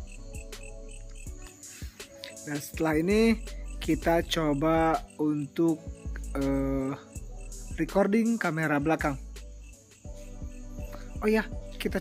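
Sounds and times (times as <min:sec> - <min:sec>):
crickets chirping: 0:00.0 - 0:12.0
man's voice: 0:02.3 - 0:09.3, 0:11.0 - 0:12.0.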